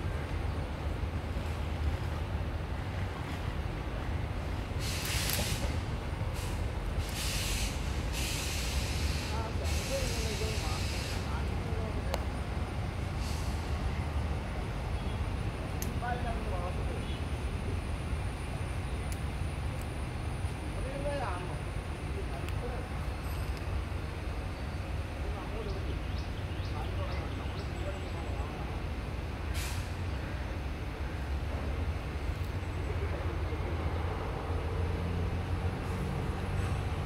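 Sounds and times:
bursts of hiss: 0:04.8 - 0:05.8, 0:06.4 - 0:11.3
faint distant voices: 0:32.6 - 0:34.6.

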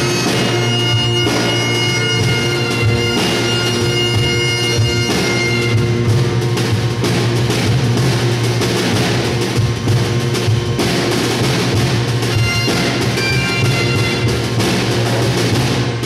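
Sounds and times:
bagpipes: 0:00.0 - 0:06.4, 0:12.2 - 0:14.9
bodhran drum: 0:00.0 - 0:16.0
snare drum: 0:00.0 - 0:16.0.

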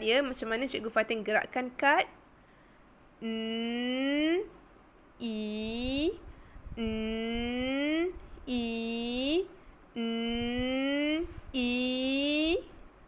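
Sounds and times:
woman sounding out letter sounds: 0:05.2 - 0:06.2, 0:06.8 - 0:12.7.

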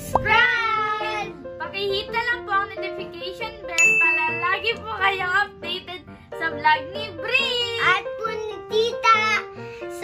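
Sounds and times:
background music: 0:00.0 - 0:10.0
bright ding sound effect: 0:03.8 - 0:04.7.

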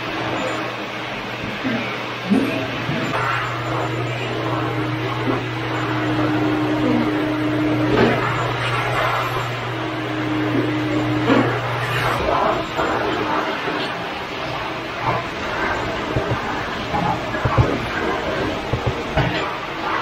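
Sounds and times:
shop vacuum droning: 0:00.0 - 0:20.0
higher hum: 0:02.3 - 0:20.0.

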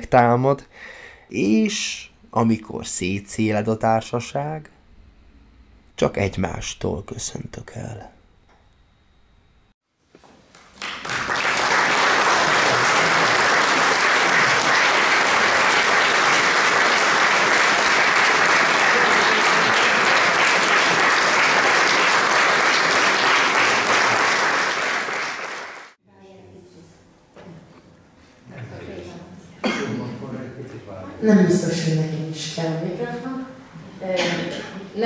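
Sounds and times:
audience clapping: 0:10.4 - 0:26.0.

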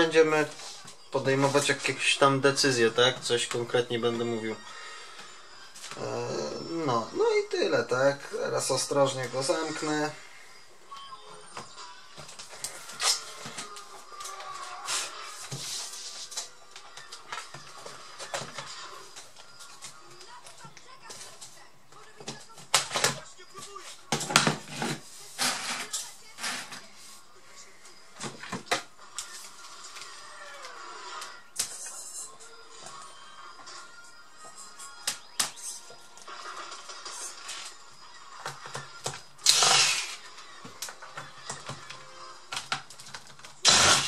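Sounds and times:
faint background music: 0:00.0 - 0:44.0.

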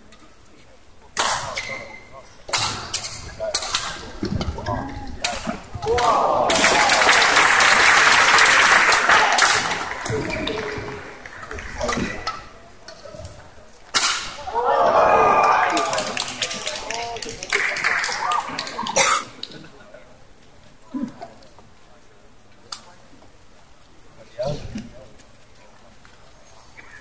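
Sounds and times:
spectators shouting and cheering: 0:05.7 - 0:11.8, 0:14.3 - 0:19.0.

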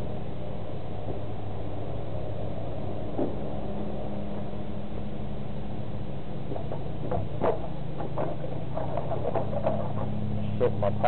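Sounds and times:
muffled voices: 0:10.4 - 0:11.0.

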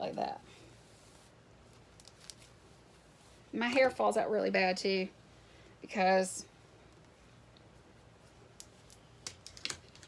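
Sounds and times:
faint clicks and rustles of hair: 0:00.0 - 0:05.0, 0:05.7 - 0:10.0.

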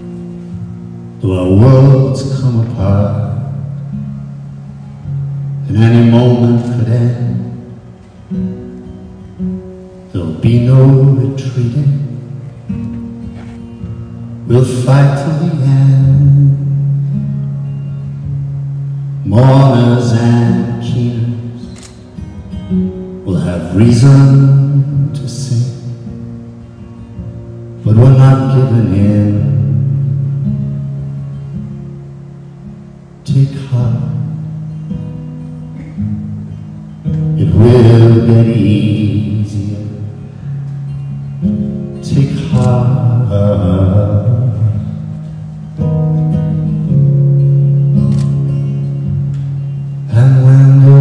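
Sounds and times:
acoustic guitar playing softly: 0:00.0 - 0:51.0
person singing slow song: 0:00.0 - 0:51.0
person singing: 0:37.4 - 0:40.6, 0:42.0 - 0:45.2, 0:50.1 - 0:51.0.

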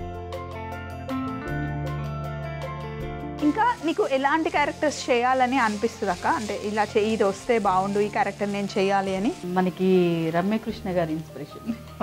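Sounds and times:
woman talking: 0:03.4 - 0:11.8
food sizzling in a pan: 0:03.4 - 0:12.0.

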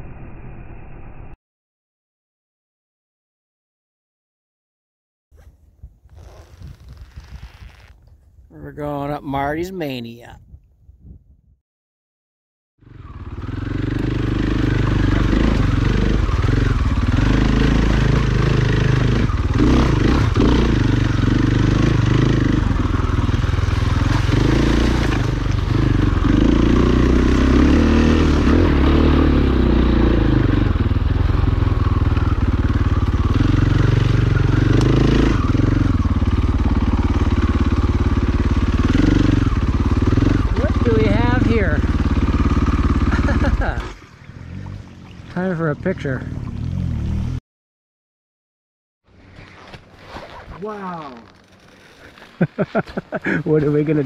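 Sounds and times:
dirt bike engine under load: 0:49.2 - 0:54.0.

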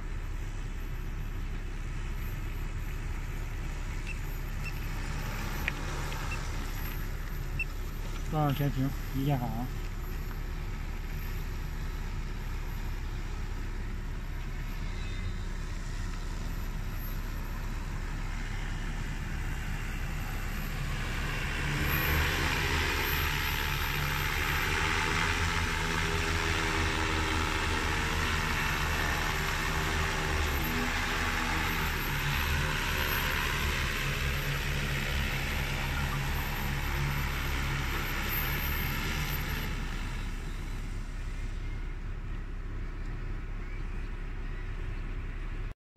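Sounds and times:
drone propellers buzzing: 0:01.9 - 0:43.4.

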